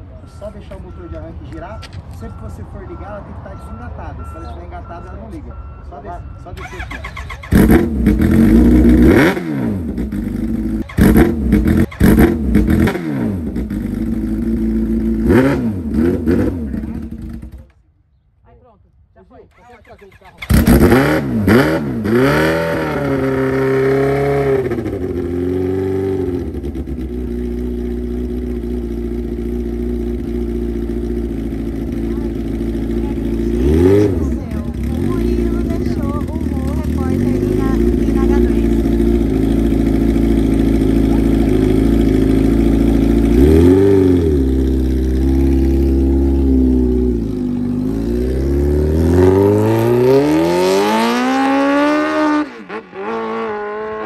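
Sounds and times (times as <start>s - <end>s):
motorcycle engine revving and idling: 6.6s - 17.8s, 19.6s - 54.0s.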